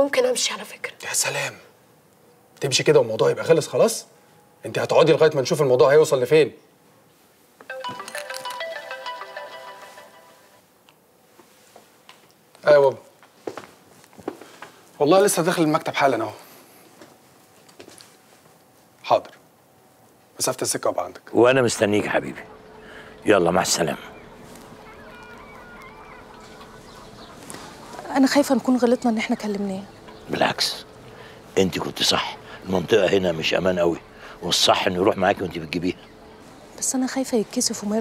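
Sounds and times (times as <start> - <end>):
phone ringtone melody: 7.7 - 10.7, 22.2 - 28.0
faint distant bird calls: 14.4 - 38.0
low steady hum: 16.4 - 38.0.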